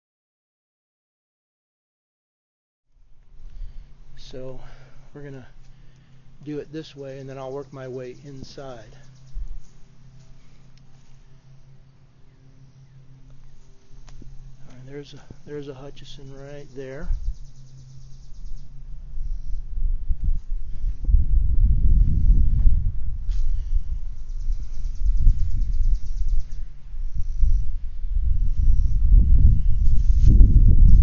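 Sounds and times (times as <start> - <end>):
fast-pulsing insect chirr: 7.0 - 10.2, 11.2 - 19.8, 24.0 - 30.2
wind buffeting microphone: 14.0 - 31.0.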